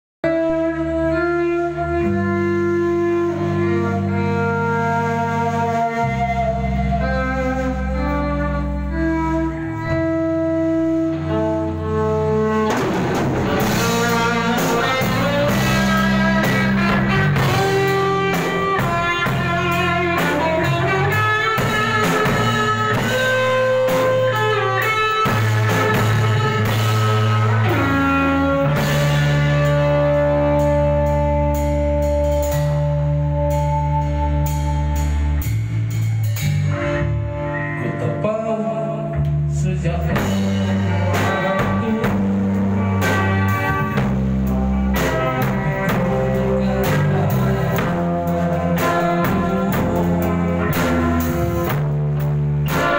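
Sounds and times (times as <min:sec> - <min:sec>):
drum kit: 0:00.2 - 0:38.4, 0:39.0 - 0:52.9
electric guitar lead: 0:00.2 - 0:52.9
man singing: 0:37.7 - 0:44.0, 0:44.9 - 0:51.5.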